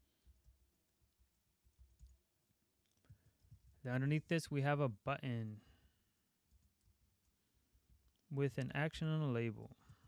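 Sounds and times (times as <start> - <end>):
keyboard typing clicks: 1.6 - 2.2.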